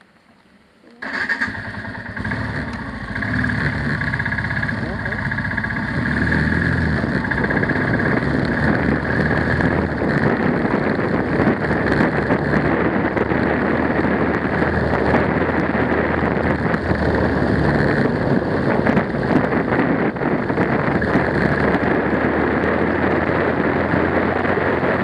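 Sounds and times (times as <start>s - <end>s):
motorcycle engine riding off: 1.0s - 25.0s.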